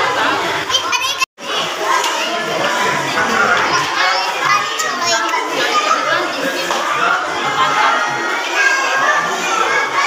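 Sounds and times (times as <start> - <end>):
children chattering: 0.0 - 10.0.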